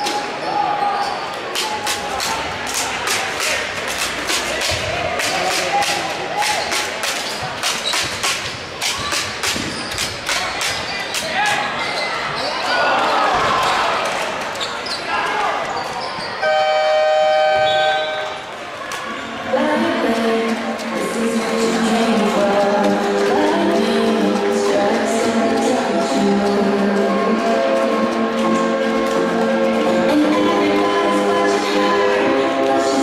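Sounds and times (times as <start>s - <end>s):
echoing voices: 8.5s - 33.0s
scoreboard horn: 16.4s - 18.4s.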